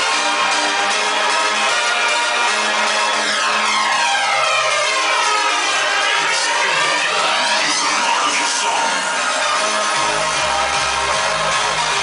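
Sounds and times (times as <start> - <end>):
loud hardstyle dance music: 0.0 - 12.0.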